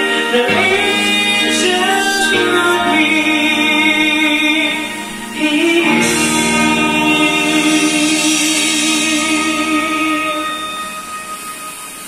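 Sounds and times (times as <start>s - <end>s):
man singing with vibrato: 0.0s - 11.4s
backing music note: 0.4s - 12.0s.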